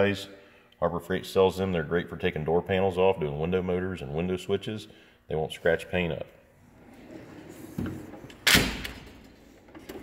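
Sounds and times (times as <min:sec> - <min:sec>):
metal drawer slamming shut: 0:07.6 - 0:10.0.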